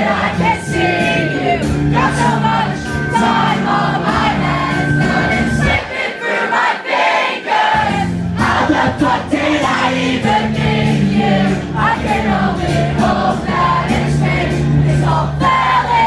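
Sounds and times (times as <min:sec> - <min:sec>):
audience singing along: 0:00.0 - 0:16.0
live pop-punk band: 0:00.0 - 0:16.0.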